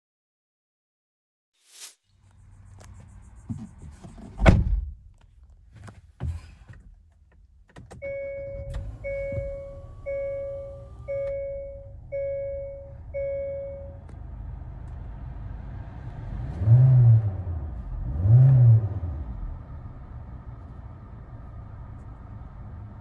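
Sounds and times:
car engine starting and idling: 6.9s - 23.0s
dashboard warning chime: 8.0s - 14.1s
car engine revving: 14.1s - 23.0s.

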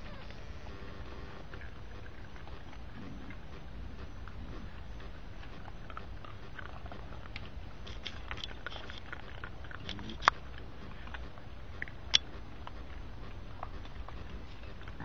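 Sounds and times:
raccoons crunching dry kibble: 0.0s - 15.0s
steady low rumble: 0.0s - 15.0s.

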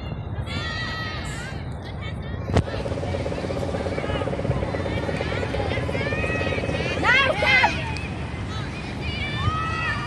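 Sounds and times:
pulsing machine drone: 2.6s - 8.0s
low outdoor rumble: 2.6s - 10.0s.

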